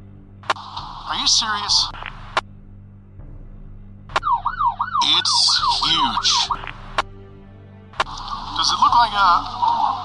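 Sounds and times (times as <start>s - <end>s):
low hum: 0.0s - 10.0s
police siren yelping: 4.2s - 6.8s
sharp click: 8.0s - 8.4s.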